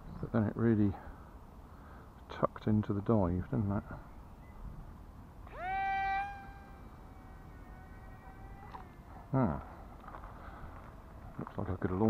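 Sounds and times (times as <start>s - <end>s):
toy plane motor whine: 5.4s - 11.4s.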